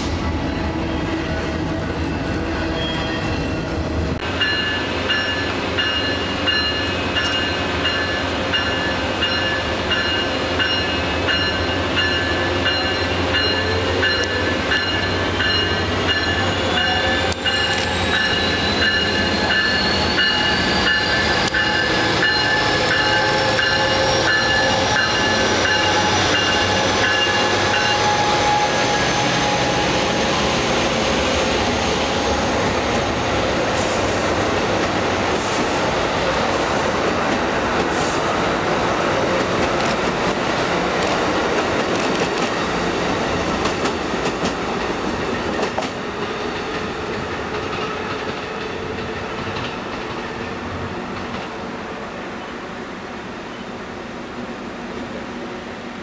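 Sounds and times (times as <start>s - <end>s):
train wheels clicking and squealing: 0.0s - 33.2s, 39.2s - 51.6s
train bell ringing: 4.2s - 30.2s.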